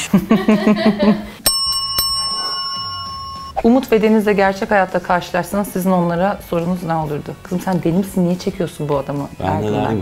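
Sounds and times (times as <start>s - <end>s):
laughter: 0.0s - 1.4s
desk bell ringing: 1.4s - 3.6s.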